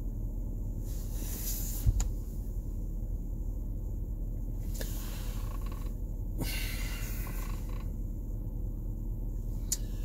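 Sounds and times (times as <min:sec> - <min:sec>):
car cabin low rumble: 0:00.0 - 0:10.0.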